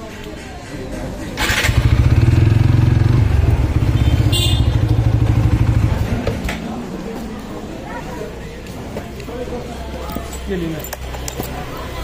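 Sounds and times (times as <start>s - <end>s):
motorcycle engine starting and idling: 1.2s - 7.9s.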